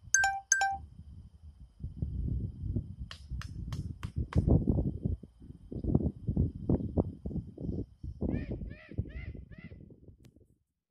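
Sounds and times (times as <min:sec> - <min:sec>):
sharp high clicks: 0:00.1 - 0:00.8
short electronic beeps: 0:00.1 - 0:00.8.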